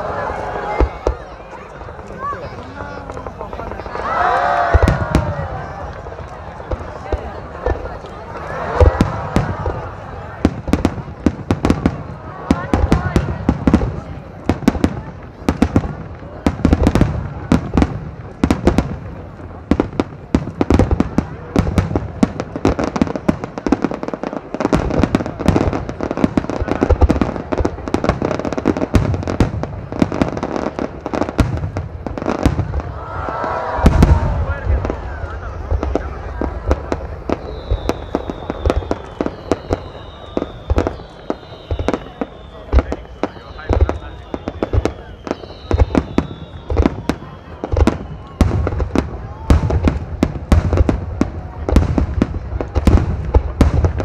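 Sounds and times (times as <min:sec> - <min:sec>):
fireworks bursting: 0:00.0 - 0:54.0.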